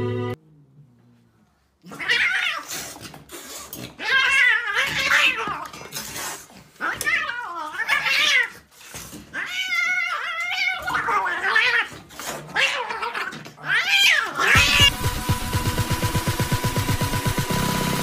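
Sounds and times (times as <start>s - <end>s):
kitten yowling and growling: 1.9s - 3.0s, 3.8s - 8.7s, 9.3s - 14.9s.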